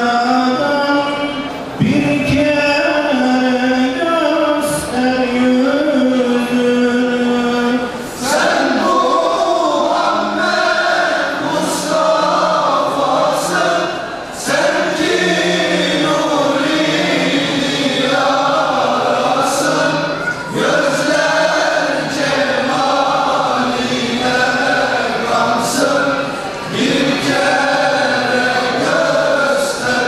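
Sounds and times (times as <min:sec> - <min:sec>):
male choir singing a hymn: 0:00.0 - 0:30.0.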